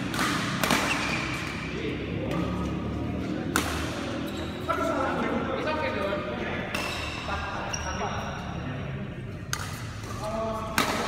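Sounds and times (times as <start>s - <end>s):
racket hitting shuttlecock: 0.0s - 4.3s, 6.6s - 7.3s, 9.4s - 11.0s
shoes squeaking on court floor: 0.6s - 3.1s, 4.0s - 5.3s, 6.8s - 8.6s.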